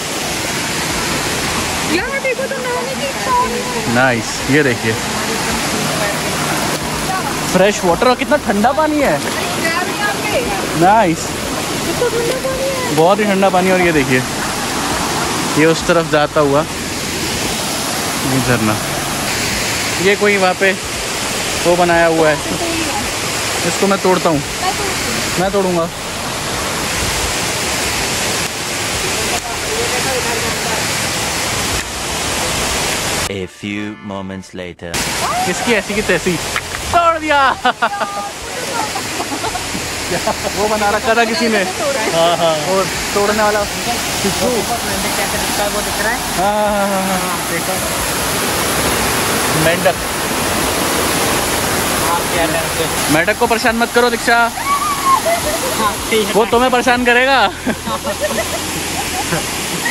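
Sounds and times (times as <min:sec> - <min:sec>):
water rushing over stones: 0:00.0 - 0:33.3, 0:35.0 - 0:59.9
person speaking: 0:33.3 - 0:39.1.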